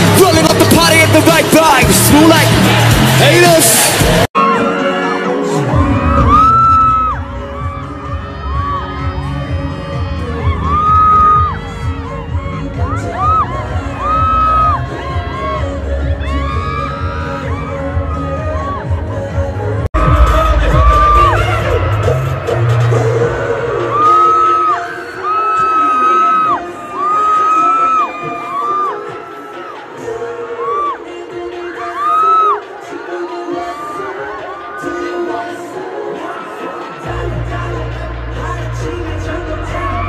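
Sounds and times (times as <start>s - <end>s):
crowd cheering and screaming: 0.0s - 40.0s
live pop music with heavy bass: 0.0s - 40.0s.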